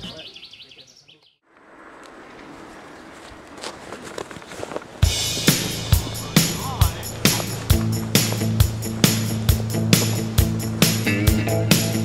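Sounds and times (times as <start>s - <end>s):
outdoor background hiss: 4.4s - 12.0s.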